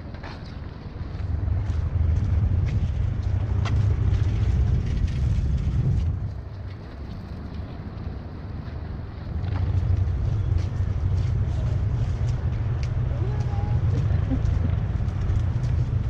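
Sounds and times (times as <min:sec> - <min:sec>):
wind buffeting microphone: 0:00.9 - 0:16.0.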